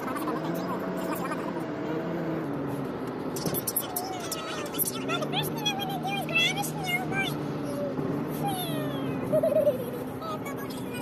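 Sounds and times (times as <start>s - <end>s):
car interior drone: 0.0s - 11.0s
high-pitched voice with drawn-out tones: 3.8s - 9.2s.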